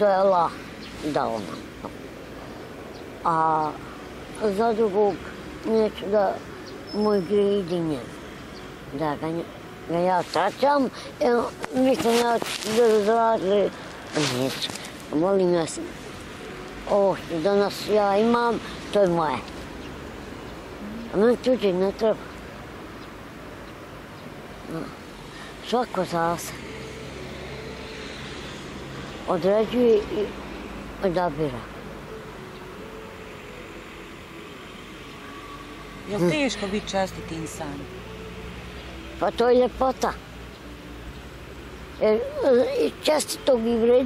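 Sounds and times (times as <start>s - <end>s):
outdoor ambience hum: 0.0s - 44.0s
faint bird chirps: 6.4s - 8.7s
man talking: 9.0s - 16.0s, 20.8s - 22.3s, 42.0s - 44.0s.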